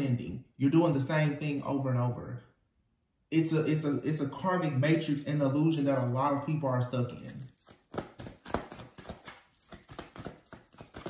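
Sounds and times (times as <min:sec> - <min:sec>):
cards being shuffled: 0:07.2 - 0:11.0.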